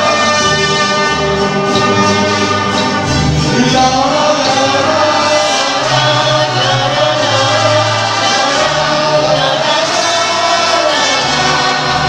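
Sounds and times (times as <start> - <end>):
mariachi band playing and singing: 0.0 - 12.0.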